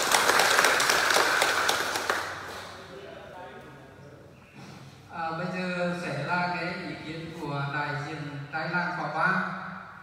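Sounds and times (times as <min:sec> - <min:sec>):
audience applauding: 0:00.0 - 0:02.8.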